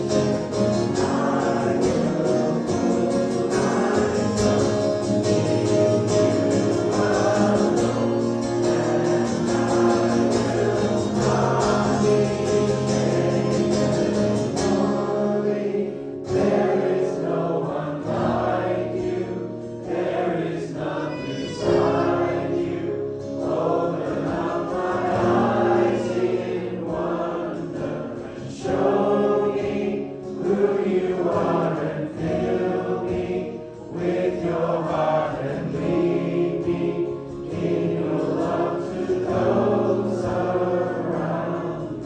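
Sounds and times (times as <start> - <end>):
congregation singing: 0.0 - 42.0.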